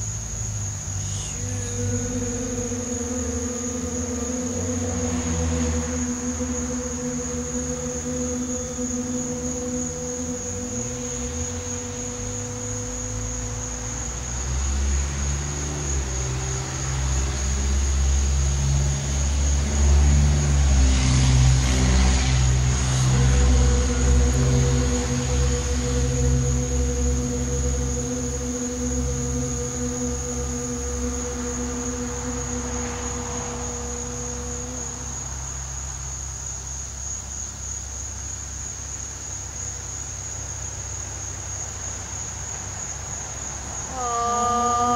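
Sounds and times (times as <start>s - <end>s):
steady low drone: 0.0s - 37.0s, 41.9s - 44.9s
crickets whining: 0.0s - 44.9s.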